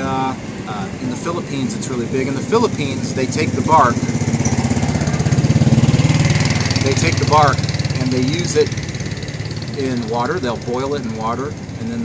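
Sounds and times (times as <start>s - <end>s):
small engine running: 0.2s - 12.0s.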